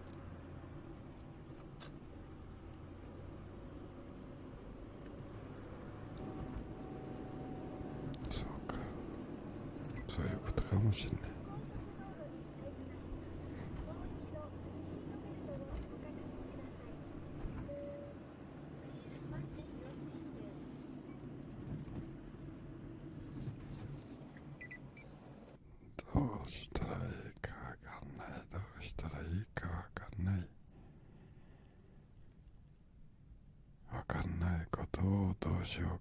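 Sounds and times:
car rumble inside cabin: 0.0 - 31.1.

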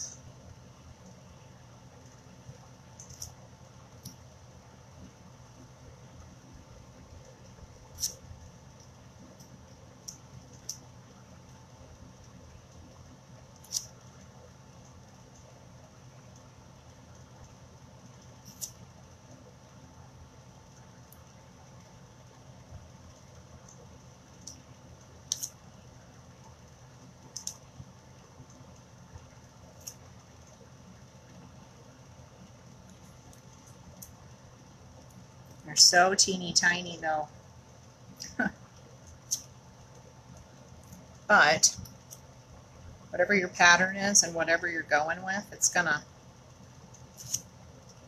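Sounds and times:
low room hum: 0.0 - 48.0.

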